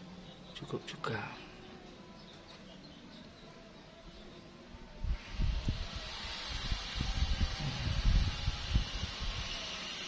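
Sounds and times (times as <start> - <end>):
wind buffeting microphone: 5.0 - 9.6
steady hiss: 5.2 - 10.0.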